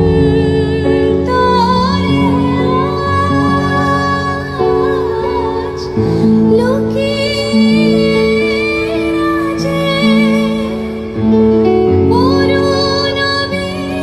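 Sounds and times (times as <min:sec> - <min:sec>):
woman singing into microphone: 0:00.0 - 0:14.0.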